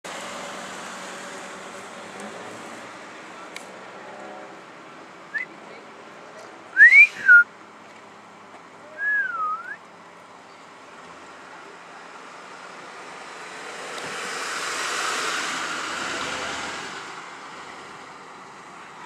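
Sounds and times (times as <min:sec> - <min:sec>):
person whistling: 0:06.8 - 0:07.5, 0:09.0 - 0:09.8.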